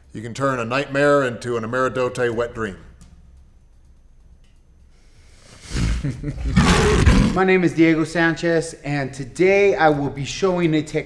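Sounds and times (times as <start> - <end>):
tiger roar: 5.6 - 7.4.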